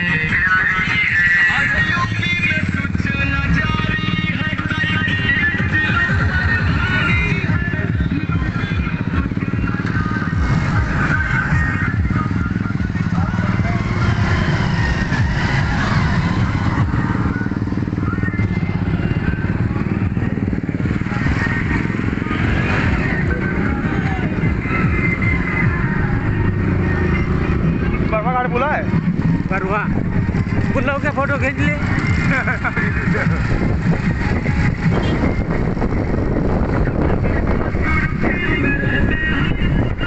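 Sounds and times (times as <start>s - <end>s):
background music: 0.0s - 40.0s
motorcycle engine running: 0.0s - 40.0s.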